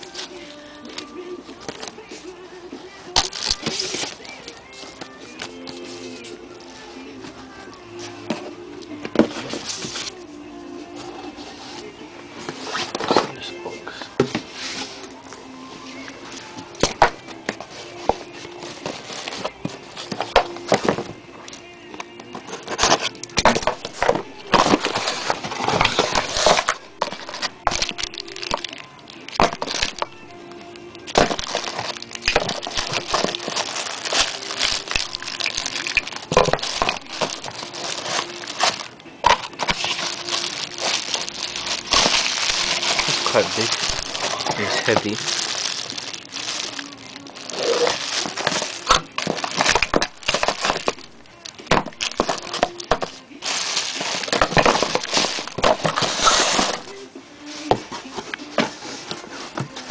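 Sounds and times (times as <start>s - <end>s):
background music: 0.0s - 59.9s
cardboard packaging rustling: 3.1s - 10.2s, 15.8s - 21.3s, 22.3s - 59.9s
plastic wrapping crinkling: 3.1s - 10.2s, 14.4s - 57.7s.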